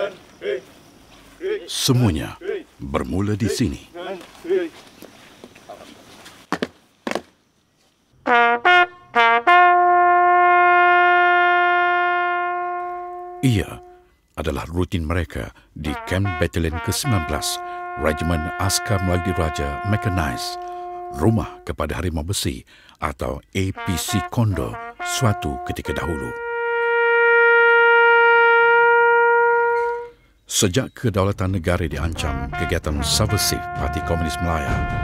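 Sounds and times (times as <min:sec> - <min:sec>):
trumpet long held note: 0:08.3 - 0:14.1, 0:15.9 - 0:21.6, 0:23.8 - 0:30.2, 0:32.1 - 0:35.0.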